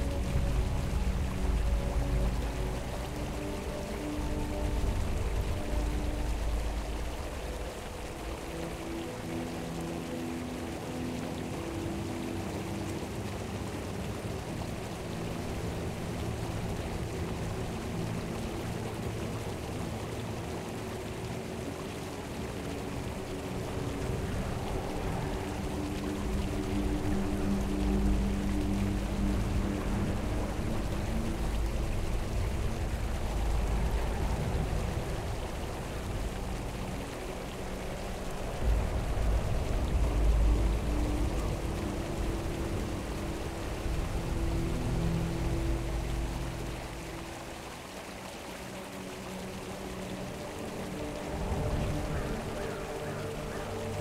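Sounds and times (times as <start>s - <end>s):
calm music of sustained low notes: 0.0s - 54.0s
flowing mountain stream: 0.0s - 54.0s.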